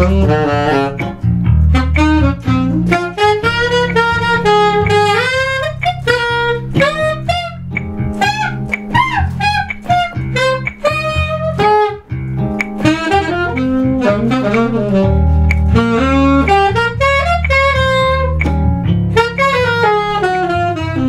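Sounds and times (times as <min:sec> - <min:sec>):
alto saxophone jazz lines: 0:00.0 - 0:21.0
band accompaniment with bass: 0:00.0 - 0:21.0.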